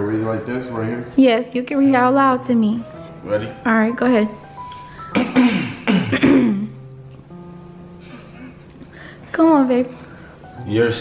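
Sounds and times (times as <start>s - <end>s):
soft music with held notes: 0.0s - 11.0s
man clearing throat: 5.1s - 6.8s.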